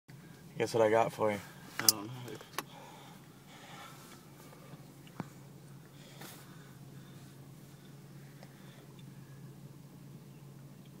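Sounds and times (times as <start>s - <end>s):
car cabin low hum: 0.1s - 11.0s
faint rustle: 1.3s - 9.5s.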